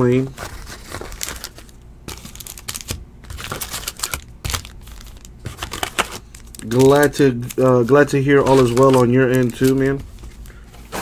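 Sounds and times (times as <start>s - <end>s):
foil wrappers crinkling: 0.0s - 11.0s.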